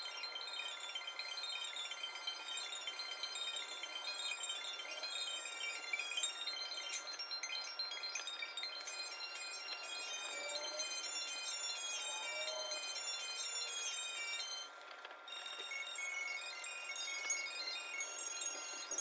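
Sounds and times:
high chime-like background music: 0.0s - 19.0s.

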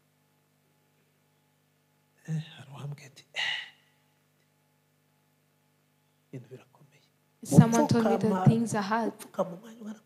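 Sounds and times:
man speaking into a microphone: 2.3s - 3.6s.

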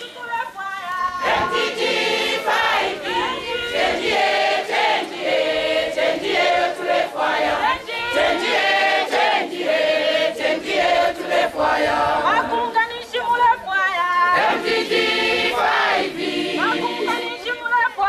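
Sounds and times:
choir singing a cappella: 1.1s - 12.9s, 14.2s - 17.9s.

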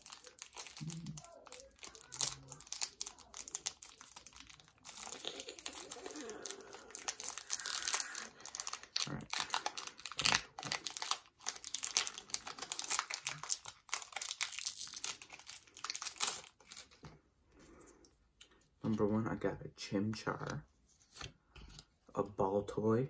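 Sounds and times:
foil wrapper crinkling: 0.0s - 17.0s
cards being handled: 20.0s - 21.9s.

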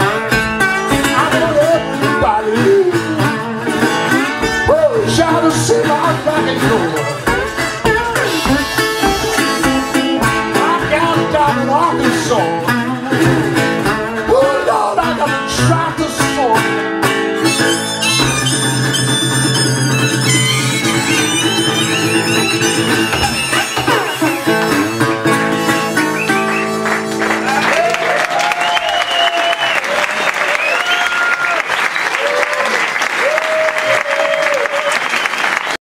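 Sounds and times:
resonator guitar blues: 0.0s - 27.8s
cheers and whistles: 25.9s - 35.8s
audience applause: 26.2s - 35.8s.

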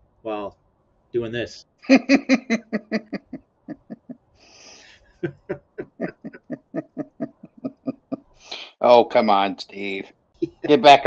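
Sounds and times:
man laughing: 1.9s - 4.2s, 5.2s - 8.2s, 10.4s - 11.0s
hissing breath in: 4.4s - 5.1s.

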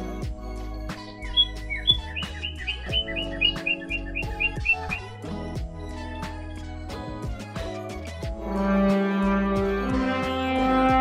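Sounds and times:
background music with beat: 0.0s - 11.0s
high bird-like chirps: 0.9s - 5.3s.

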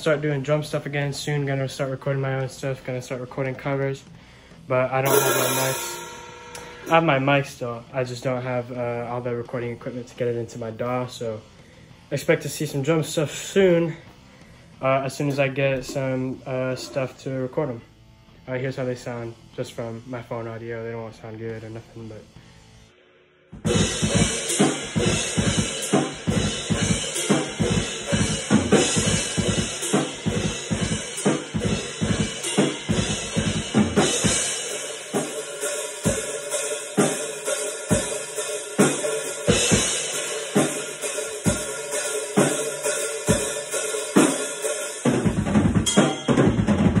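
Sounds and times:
crash and ride cymbals: 5.0s - 7.6s, 23.6s - 47.0s.

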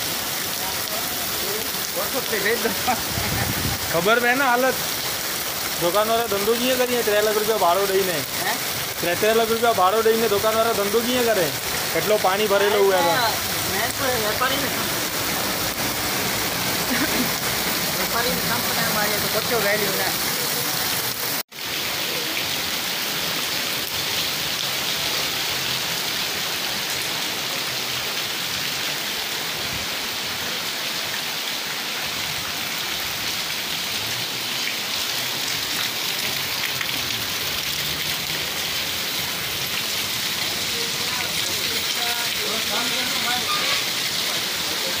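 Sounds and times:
heavy rain on flooded road: 0.0s - 45.0s.

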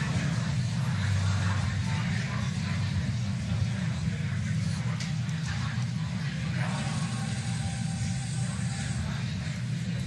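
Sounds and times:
low rumble and hiss: 0.0s - 10.0s.

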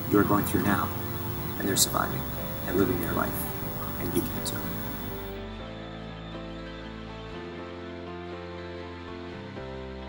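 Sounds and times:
soft background music chords: 0.0s - 10.0s.

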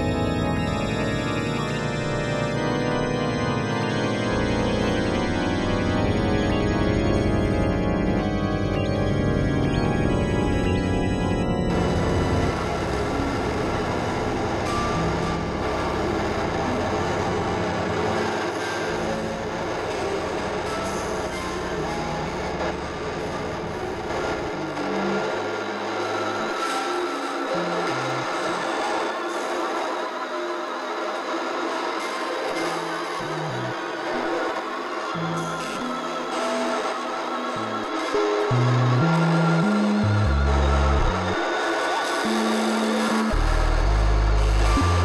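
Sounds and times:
experimental synthesizer music: 0.0s - 45.0s.

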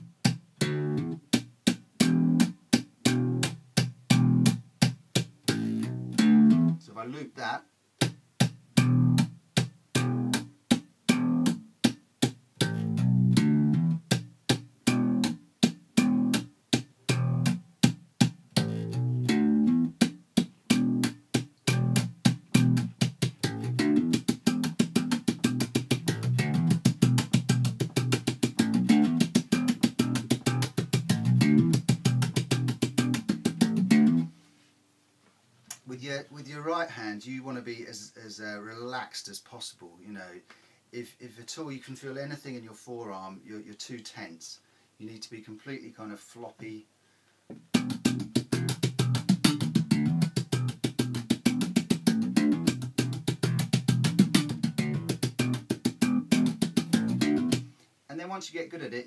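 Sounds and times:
slap bass guitar line: 0.0s - 1.4s, 2.0s - 4.6s, 5.4s - 6.8s, 8.8s - 9.3s, 10.0s - 10.5s, 11.1s - 11.6s, 12.6s - 14.2s, 14.8s - 15.4s, 16.0s - 16.5s, 17.1s - 17.6s, 18.5s - 34.3s, 47.7s - 57.7s.

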